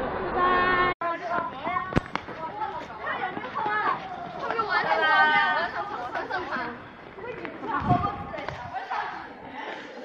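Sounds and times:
people talking in raised voices: 0.4 - 10.0.

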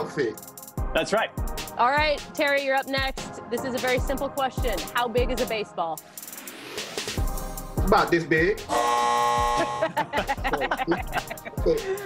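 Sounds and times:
electronic buzzer tone: 8.7 - 9.9
people laughing: 9.5 - 12.0.

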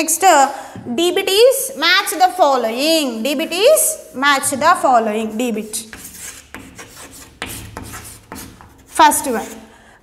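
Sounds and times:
chalk scraping on blackboard: 5.5 - 9.7
chalk tapping on board: 5.8 - 9.6.

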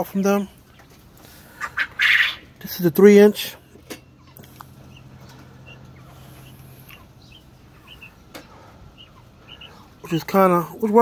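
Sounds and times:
young quail chirping: 0.6 - 11.0.

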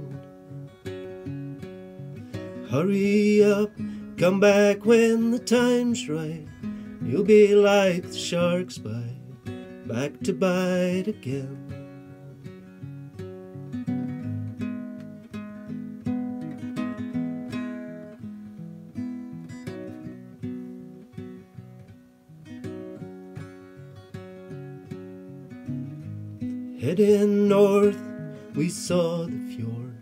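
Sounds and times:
acoustic guitar playing: 0.0 - 30.0.

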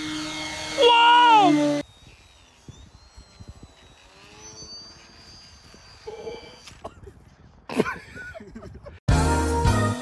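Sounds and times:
model plane motor whine: 0.0 - 7.4.

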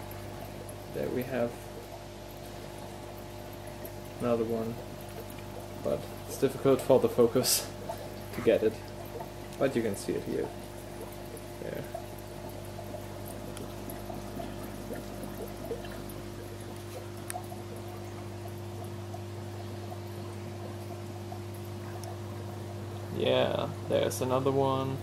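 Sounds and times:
air pump humming: 0.0 - 25.0
bubbles trickling in water: 0.0 - 25.0.

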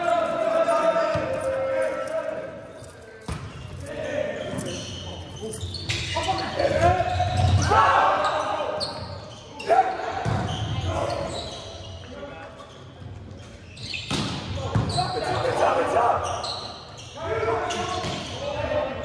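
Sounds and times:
players and spectators shouting: 6.3 - 8.8, 17.2 - 19.0.

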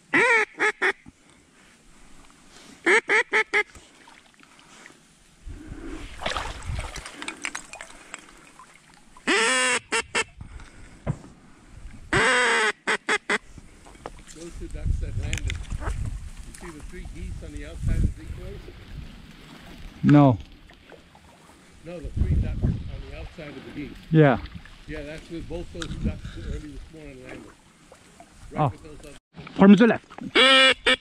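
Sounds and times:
duck call quacks: 0.1 - 1.0, 2.8 - 3.7, 9.3 - 10.3, 12.1 - 13.4, 30.3 - 31.0.

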